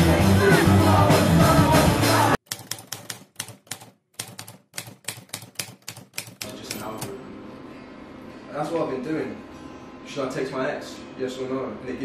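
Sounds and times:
loud band music: 0:00.0 - 0:02.4
sharp clicks: 0:02.5 - 0:07.1.

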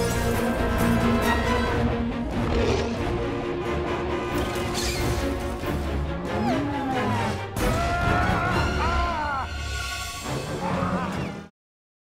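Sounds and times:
dramatic film score: 0:00.0 - 0:11.5.

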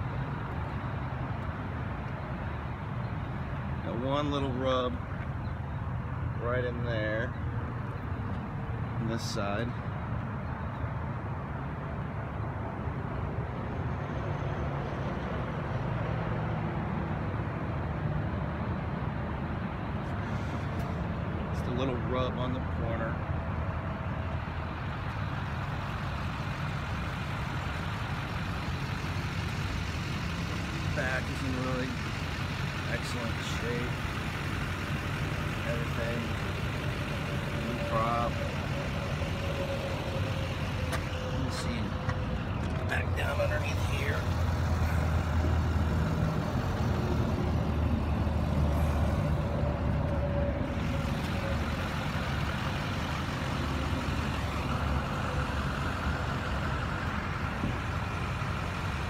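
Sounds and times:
low outdoor rumble: 0:19.7 - 0:59.0.

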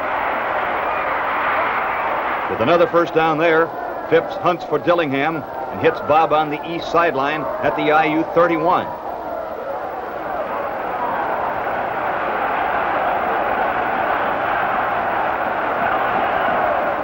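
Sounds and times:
stadium crowd cheering: 0:00.0 - 0:17.0.

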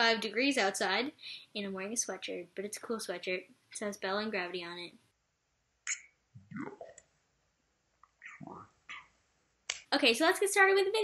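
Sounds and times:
mouth clicks: 0:05.8 - 0:07.1, 0:08.0 - 0:09.8.

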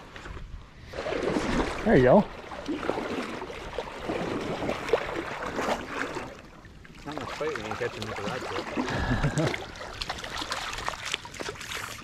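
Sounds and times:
stream water splashing and trickling: 0:00.0 - 0:12.0
person laughing: 0:08.9 - 0:09.6.

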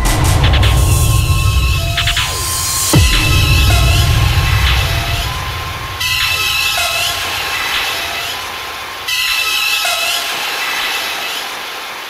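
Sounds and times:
falling sweep: 0:00.0 - 0:09.2
noisy rush with whistling tones: 0:00.0 - 0:11.5.

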